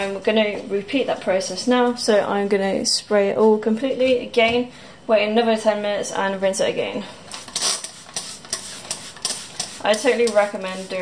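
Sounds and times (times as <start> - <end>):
spray bottle hissing sprays: 7.3 - 11.0.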